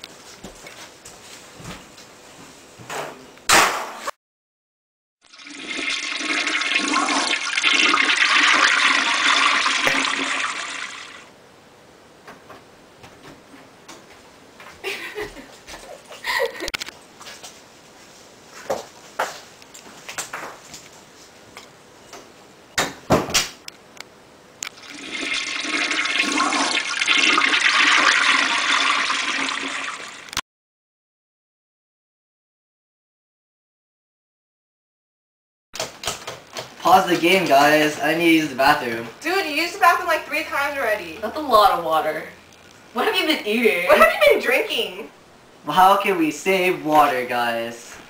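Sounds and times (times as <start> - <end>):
toilet flushing: 5.3 - 11.3, 24.8 - 30.4.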